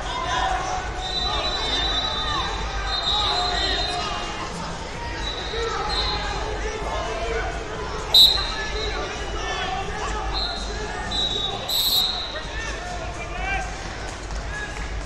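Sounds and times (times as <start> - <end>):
murmur of many voices: 0.0 - 15.0
referee whistle blast: 8.1 - 9.0, 10.4 - 12.4
distant whistle tones: 8.2 - 8.6, 10.4 - 12.4.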